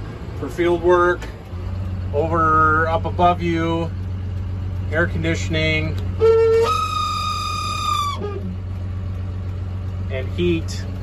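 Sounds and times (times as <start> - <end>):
tractor diesel engine idling: 0.0 - 11.0
high whistle-like tone: 6.2 - 8.5.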